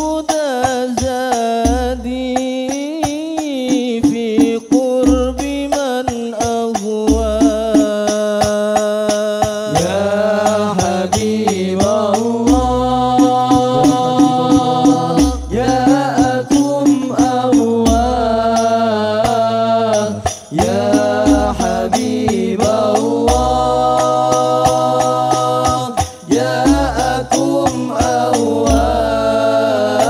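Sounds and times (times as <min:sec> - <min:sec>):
frame drums beating: 0:00.0 - 0:30.0
male voices singing in unison: 0:00.0 - 0:30.0.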